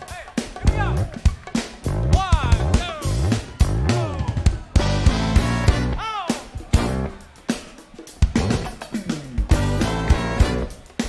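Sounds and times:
sliding bass notes: 4.8 - 6.0, 9.4 - 10.7.

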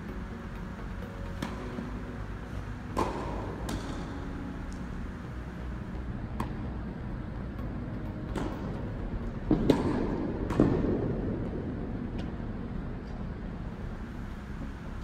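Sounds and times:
low hum of hall: 0.0 - 15.0
tennis ball struck by rackets: 1.0 - 5.0, 8.3 - 8.9, 9.5 - 11.1.

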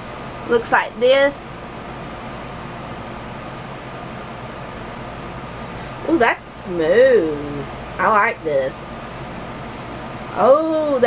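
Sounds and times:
fans and air conditioner whoosh: 0.0 - 11.0.

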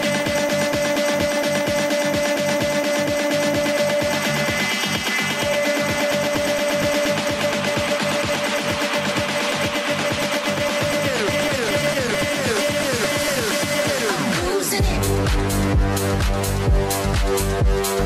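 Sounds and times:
electronic dance music beat: 0.0 - 18.0.

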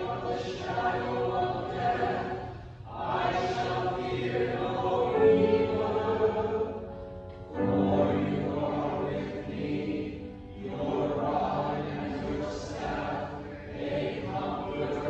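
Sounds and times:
church choir singing: 0.0 - 15.0.

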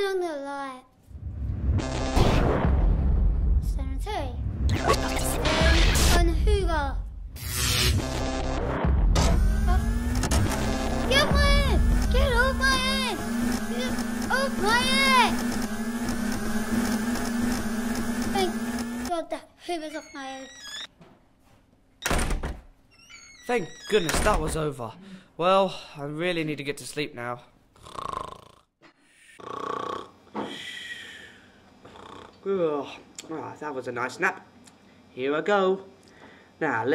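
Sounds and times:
steady buzzing hum: 2.7 - 19.4
person snoring: 27.8 - 28.7, 29.3 - 32.4.

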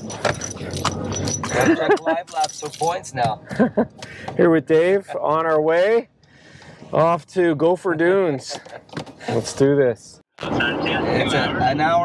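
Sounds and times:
keys jangling: 0.0 - 3.2.

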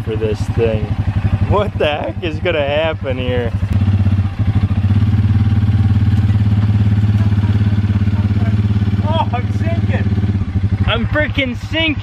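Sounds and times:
atv engine running: 0.0 - 12.0.

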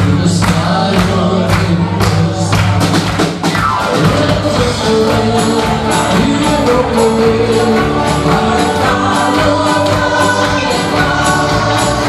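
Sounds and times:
country band playing: 0.0 - 12.0
drums steady beat: 0.0 - 12.0
person singing: 3.8 - 12.0.

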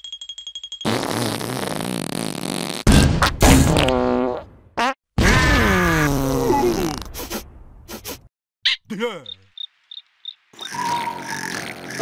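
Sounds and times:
cartoon fart blasts: 0.9 - 8.2
falling squeal: 10.6 - 11.4.

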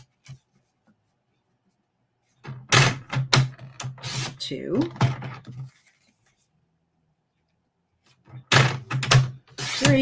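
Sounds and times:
paper trimmer blade cutting: 9.5 - 10.0.

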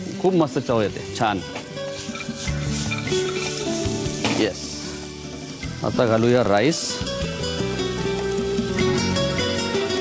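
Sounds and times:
food sizzling in a pan: 1.1 - 10.0.

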